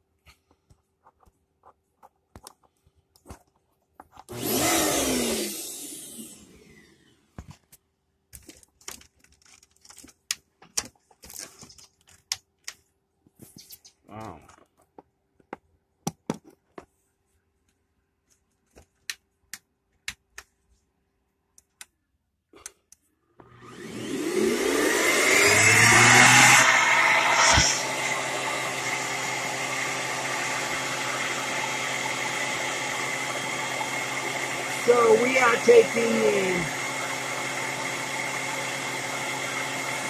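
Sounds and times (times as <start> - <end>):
vacuum cleaner motor whine: 4.3 - 7.2, 23.4 - 40.0.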